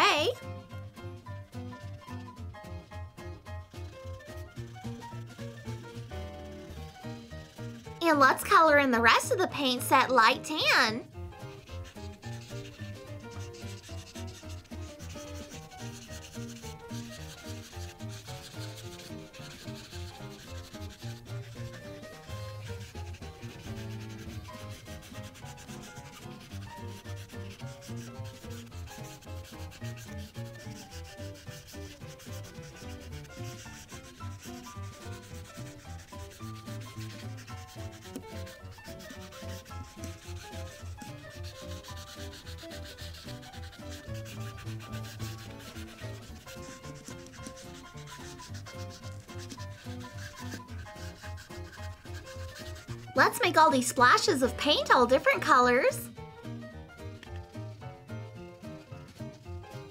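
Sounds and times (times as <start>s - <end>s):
marker rubbing on paper: 0.0s - 56.0s, 57.0s - 59.9s.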